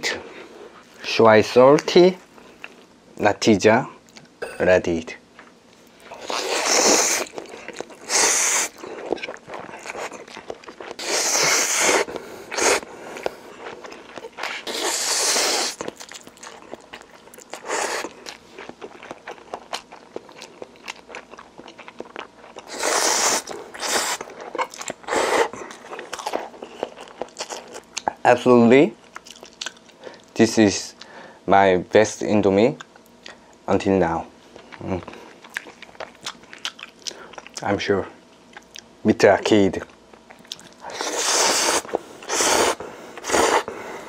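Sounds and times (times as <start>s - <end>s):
wet chewing and smacking: 5.3s - 28.2s, 29.0s - 30.4s, 34.5s - 38.9s, 39.8s - 43.7s
person slurping noodles: 6.1s - 8.8s, 10.9s - 13.4s, 14.4s - 15.8s, 17.6s - 18.2s, 22.7s - 24.2s, 25.1s - 25.6s, 40.9s - 43.7s.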